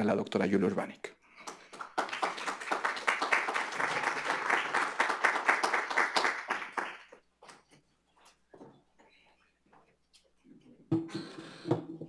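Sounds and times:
audience applauding: 0:01.4 - 0:07.2.

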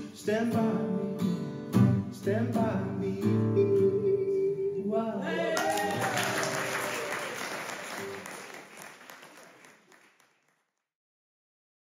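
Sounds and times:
audience clapping: 0:05.4 - 0:10.9.

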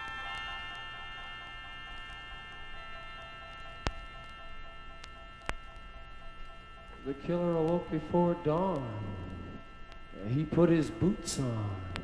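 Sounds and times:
organ chord drone: 0:00.0 - 0:12.0
faint clicks: 0:03.4 - 0:06.6.

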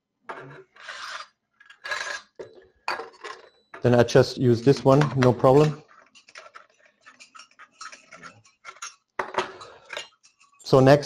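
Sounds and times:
metallic ticking and scraping: 0:03.2 - 0:10.7.

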